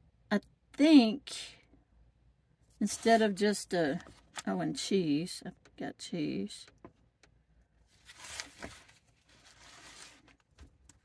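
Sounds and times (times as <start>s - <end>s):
notebook pages rustling: 2.8s - 4.6s, 7.9s - 11.0s.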